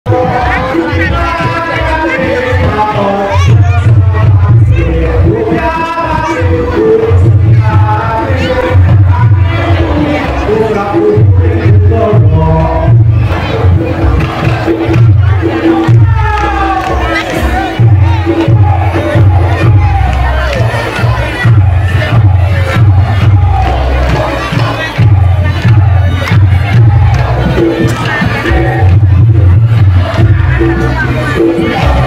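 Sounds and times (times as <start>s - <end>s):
crowd voices: 0.0s - 32.0s
low drum beats: 0.1s - 32.0s.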